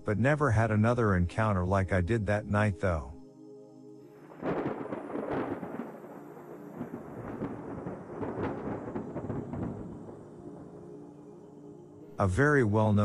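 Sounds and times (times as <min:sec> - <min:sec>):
thunder crash and rumble: 0:04.4 - 0:10.7.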